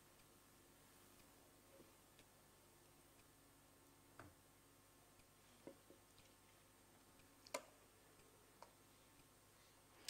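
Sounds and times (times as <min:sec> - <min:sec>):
faint clicks and taps: 0:05.2 - 0:09.3.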